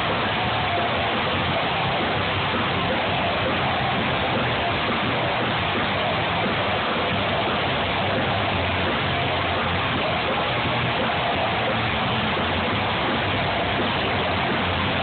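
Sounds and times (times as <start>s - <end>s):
low bass notes: 0.0s - 15.0s.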